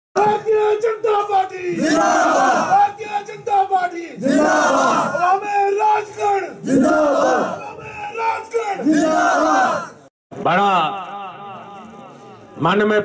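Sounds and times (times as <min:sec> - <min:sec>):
crowd shouting slogans: 0:01.8 - 0:02.8, 0:04.2 - 0:10.1.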